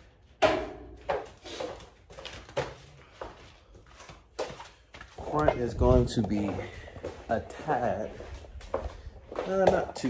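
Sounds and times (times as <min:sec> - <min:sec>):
knocks and rustles in room: 0:00.0 - 0:10.0.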